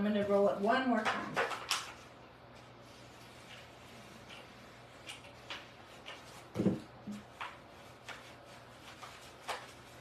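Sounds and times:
paper rustling and scraping: 2.6 - 10.0.

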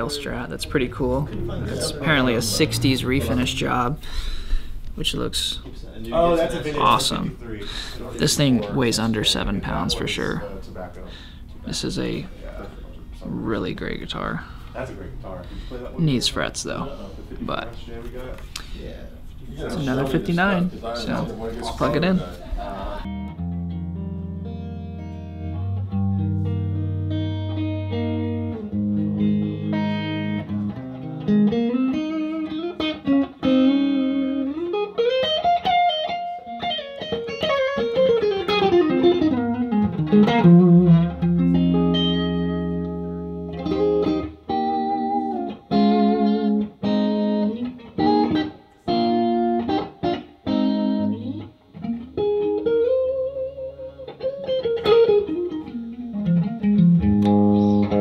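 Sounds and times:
electric guitar lead lines: 0.0 - 58.0.

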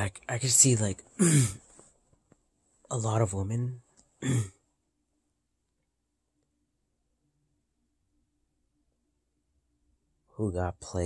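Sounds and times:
man clearing throat: 1.2 - 1.6, 4.2 - 4.6.

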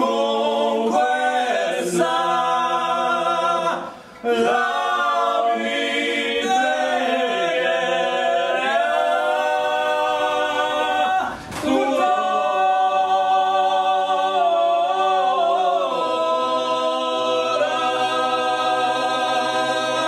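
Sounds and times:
men singing a cappella: 0.0 - 20.0.

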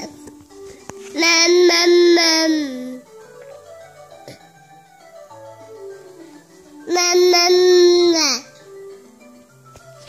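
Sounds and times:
faint background music: 0.0 - 10.0
baby humming: 1.2 - 3.0.

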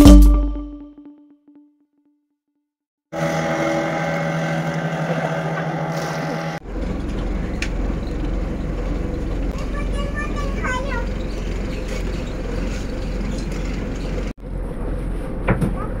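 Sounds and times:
outboard motor humming: 3.1 - 14.3
deep boat engine drone: 3.1 - 15.6.

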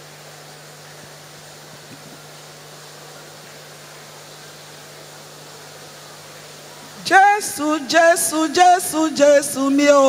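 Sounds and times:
low electrical hum: 0.0 - 10.0
steady hiss: 0.0 - 10.0.

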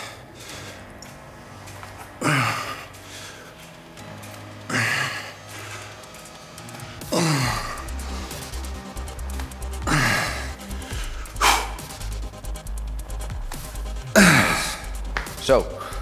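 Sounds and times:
background music with low bass: 0.0 - 16.0
man grunting and exhaling: 7.0 - 8.0, 9.8 - 11.9, 14.1 - 14.9.

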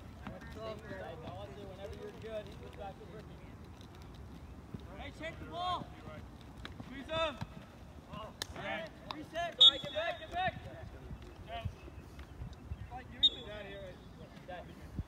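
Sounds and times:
players shouting: 6.8 - 10.7.

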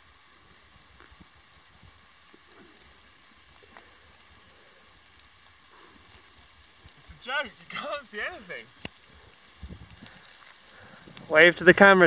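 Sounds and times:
faint steady hiss: 0.0 - 12.0
soft ticks and clicks: 8.7 - 11.3.

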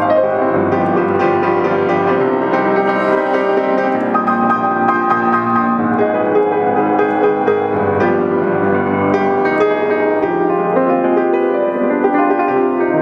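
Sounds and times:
solo piano chords and melody: 0.0 - 13.0.

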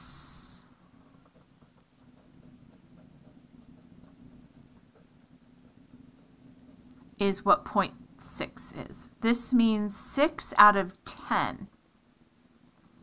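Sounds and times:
pencil scratching on paper: 0.3 - 7.6.

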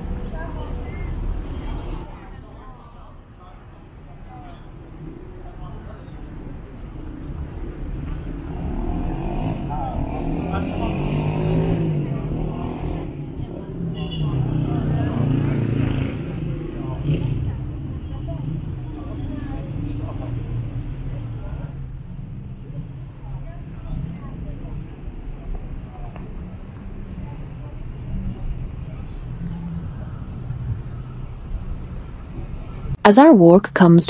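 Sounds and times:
car traffic rumble: 0.0 - 33.6
people talking: 33.0 - 34.0.

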